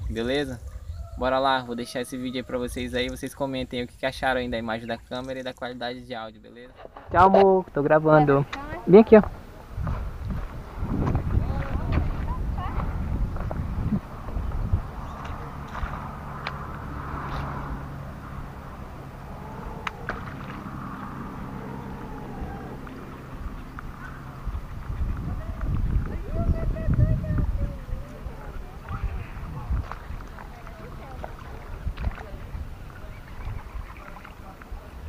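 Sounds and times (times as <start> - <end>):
wind gusts on microphone: 8.2 - 35.0.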